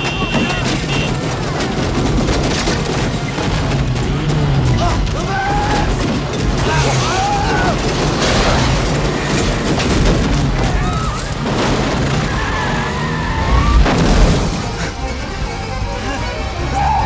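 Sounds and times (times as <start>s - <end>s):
booms and crashes: 0.0s - 14.9s
orchestral action music: 0.0s - 17.0s.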